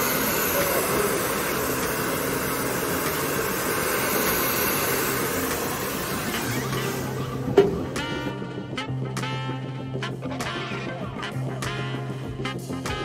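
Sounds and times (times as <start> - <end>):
hair dryer blowing air: 0.0 - 8.6.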